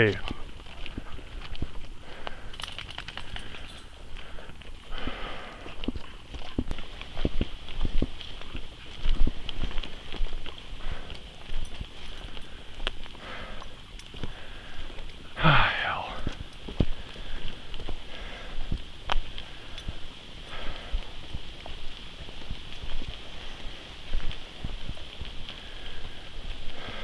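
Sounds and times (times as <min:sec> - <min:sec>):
footsteps on dirt trail: 0:00.0 - 0:27.0.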